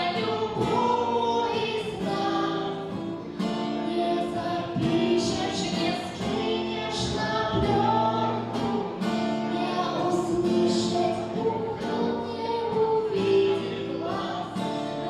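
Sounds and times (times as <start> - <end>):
acoustic guitar: 0.0 - 15.0
woman singing: 0.0 - 15.0.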